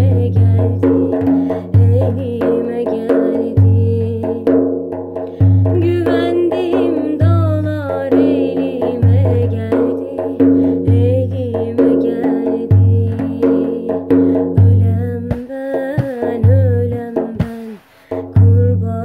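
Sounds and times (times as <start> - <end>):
frame drum rhythm: 0.0 - 19.0.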